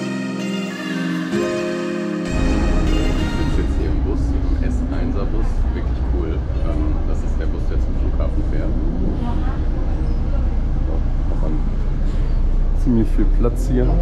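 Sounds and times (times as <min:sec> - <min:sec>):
bus engine rumble: 0:02.3 - 0:14.0
indistinct voices: 0:02.3 - 0:14.0
road and traffic noise: 0:02.4 - 0:14.0.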